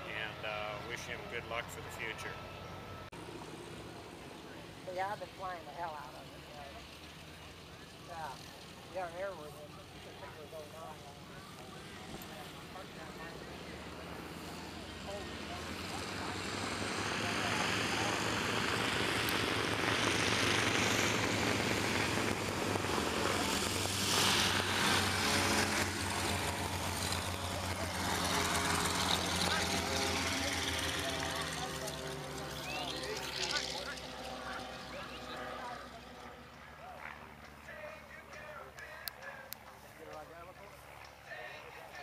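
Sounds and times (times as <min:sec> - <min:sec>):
propeller aircraft engine droning: 0:00.0 - 0:42.0.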